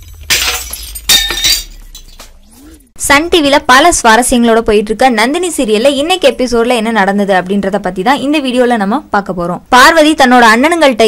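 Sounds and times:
glass shattering: 0:00.0 - 0:02.5.

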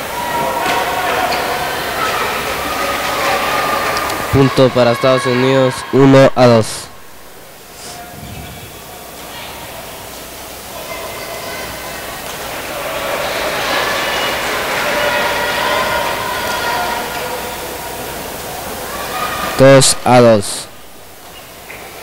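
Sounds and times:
murmur of many voices: 0:00.0 - 0:22.0.

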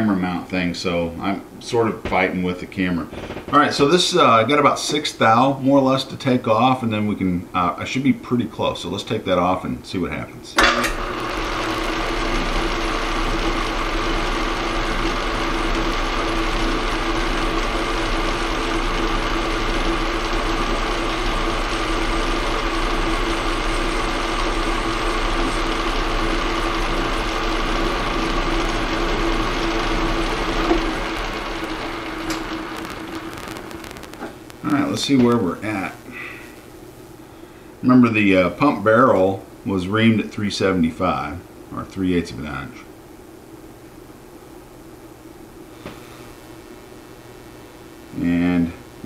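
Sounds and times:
metal lathe whining: 0:10.6 - 0:33.9.

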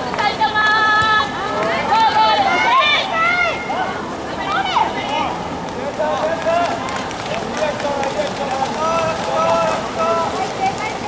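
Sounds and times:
swimmers splashing: 0:00.0 - 0:11.0.

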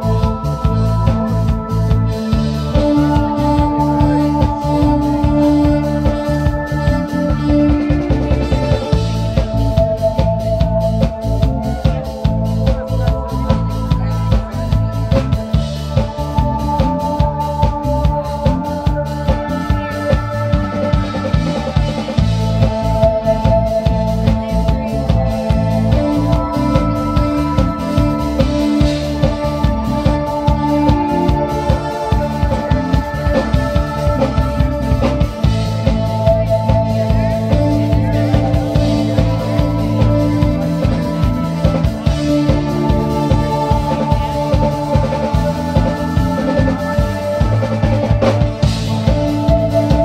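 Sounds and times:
drum kit steady beat: 0:00.0 - 0:50.0
electric guitar long notes: 0:00.0 - 0:50.0
keyboard long notes: 0:00.0 - 0:50.0
live band playing: 0:00.0 - 0:50.0.

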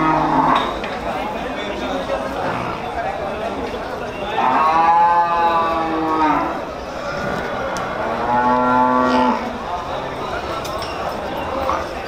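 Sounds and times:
buffalo mooing: 0:00.0 - 0:00.7, 0:07.2 - 0:09.5.

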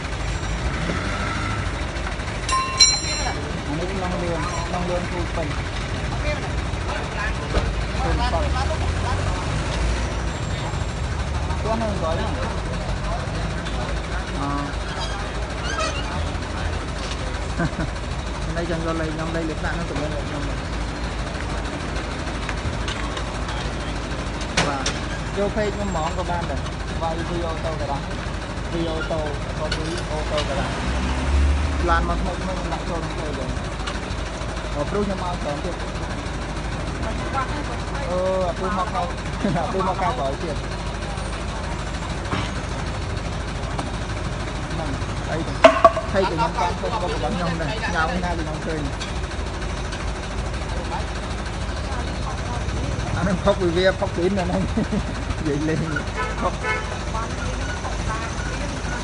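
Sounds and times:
truck engine idling: 0:00.0 - 0:59.0
people talking: 0:02.5 - 0:05.6, 0:11.6 - 0:17.0, 0:24.6 - 0:28.1, 0:28.7 - 0:30.8, 0:31.8 - 0:33.6, 0:37.0 - 0:42.2, 0:44.7 - 0:49.0, 0:51.8 - 0:59.0
sharp knocks: 0:45.6 - 0:46.2.

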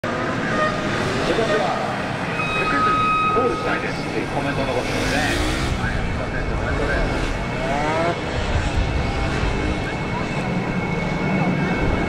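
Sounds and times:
announcer speaking: 0:02.5 - 0:08.1
motorcycle engines running: 0:03.9 - 0:12.0.

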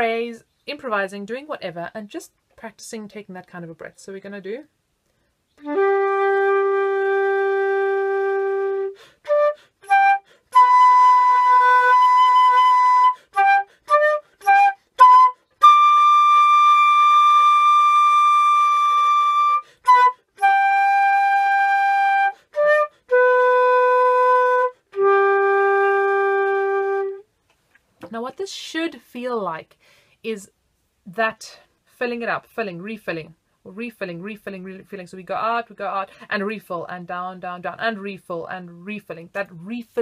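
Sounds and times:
flute playing: 0:05.6 - 0:27.3.

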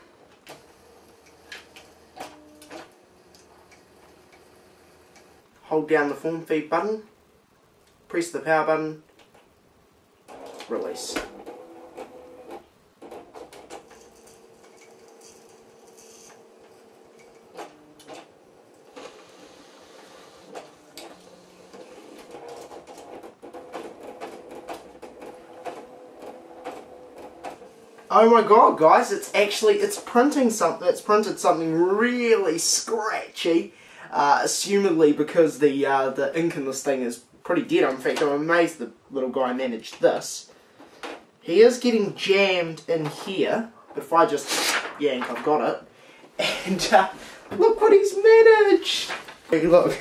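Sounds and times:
faint steady hum: 0:00.0 - 0:50.0
printer clicking: 0:10.3 - 0:28.0.

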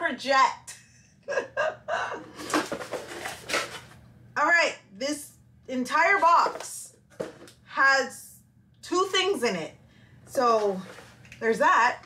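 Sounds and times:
contents rustling and scraping: 0:02.3 - 0:04.1, 0:06.2 - 0:07.6, 0:10.3 - 0:12.0.

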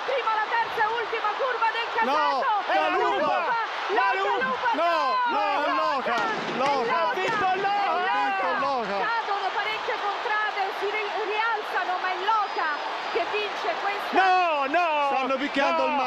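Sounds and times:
people shouting in crowd: 0:00.0 - 0:15.0
large crowd noise: 0:00.0 - 0:16.0
man commentating excitedly: 0:02.0 - 0:09.2, 0:14.1 - 0:16.0.

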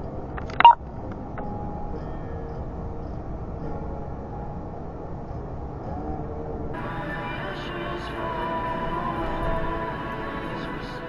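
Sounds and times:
steady background noise: 0:00.0 - 0:11.0
short electronic beep: 0:00.5 - 0:00.8.

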